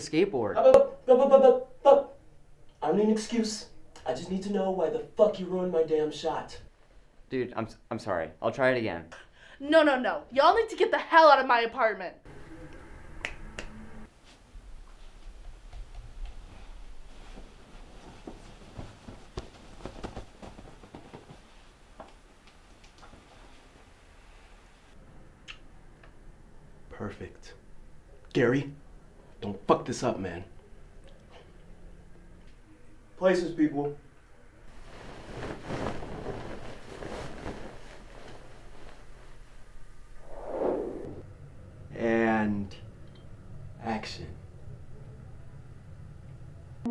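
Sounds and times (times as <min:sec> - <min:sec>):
bedsheet rustling and swishing: 0:14.1 - 0:25.0, 0:34.7 - 0:41.2.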